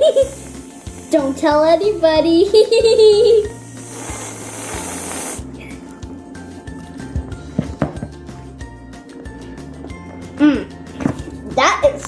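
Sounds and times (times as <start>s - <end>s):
aerosol can spraying hiss: 0.0s - 5.6s
background music: 0.0s - 12.0s.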